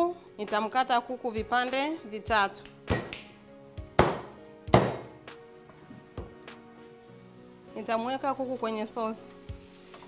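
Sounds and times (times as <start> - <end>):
background music: 0.0 - 10.0
cleaver chopping on cutting board: 4.0 - 5.1.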